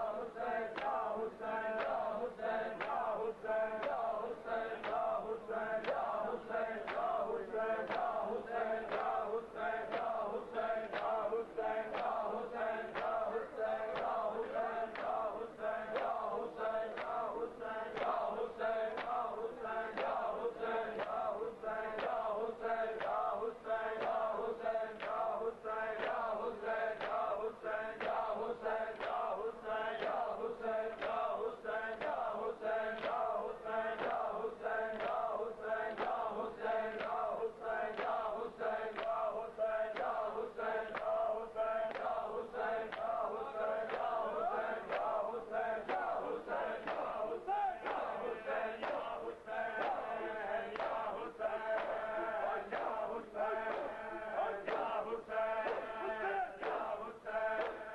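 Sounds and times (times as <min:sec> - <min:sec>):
men chanting a lament: 0:00.0 - 0:57.9.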